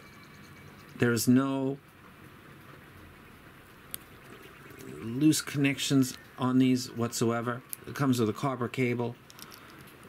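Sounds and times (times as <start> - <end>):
handling small metal earphone: 9.2 - 10.0.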